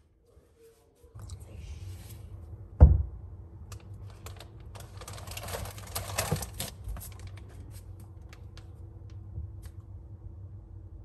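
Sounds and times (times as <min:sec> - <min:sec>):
plastic bag crinkling: 0:03.9 - 0:08.6.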